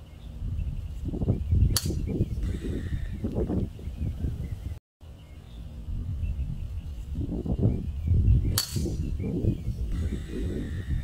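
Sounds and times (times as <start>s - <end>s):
golf club striking ball: 1.8s - 2.2s, 8.5s - 9.1s.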